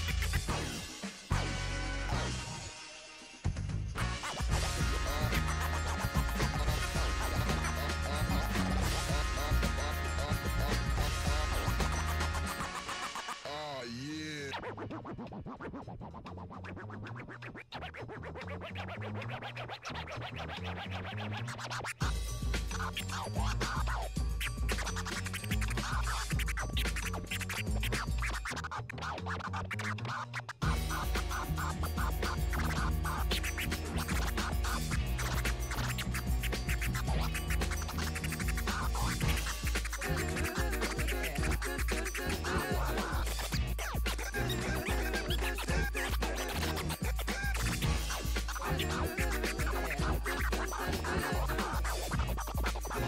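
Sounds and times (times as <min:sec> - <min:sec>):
turntable scratching: 0:00.0 - 0:02.5, 0:04.0 - 0:53.0
dance music mix: 0:00.0 - 0:03.4, 0:04.0 - 0:14.8, 0:21.6 - 0:28.7, 0:30.4 - 0:53.0.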